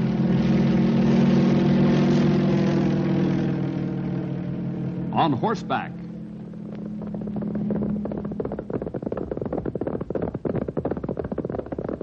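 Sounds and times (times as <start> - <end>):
propeller airplane engine droning: 0.0 - 12.0.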